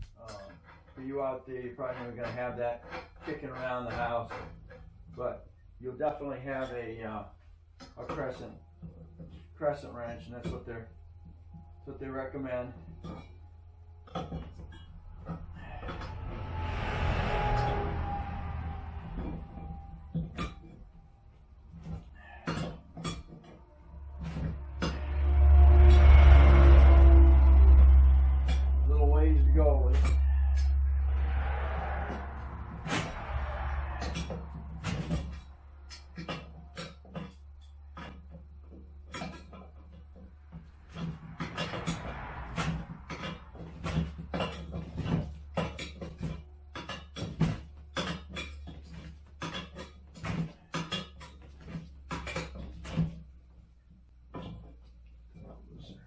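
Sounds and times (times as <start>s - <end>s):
loud low rumble: 10.6s - 21.8s, 23.6s - 36.2s.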